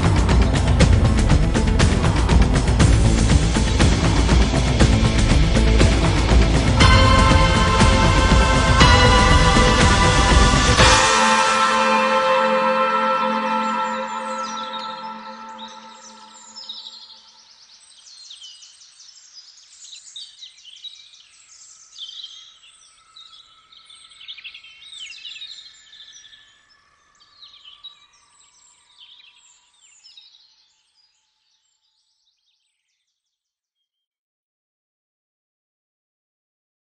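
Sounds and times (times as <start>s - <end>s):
birds chirping and trilling: 12.4s - 33.1s.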